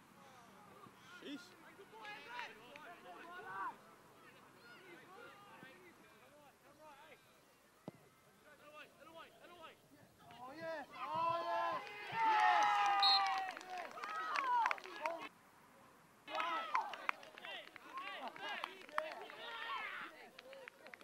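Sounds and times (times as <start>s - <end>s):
people shouting and cheering: 10.3s - 15.2s, 16.3s - 20.6s.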